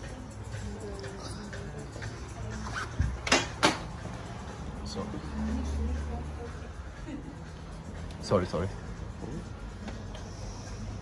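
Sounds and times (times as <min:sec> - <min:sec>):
quiet background music: 0:00.0 - 0:11.0
phone scraping against sleeve: 0:02.6 - 0:03.1.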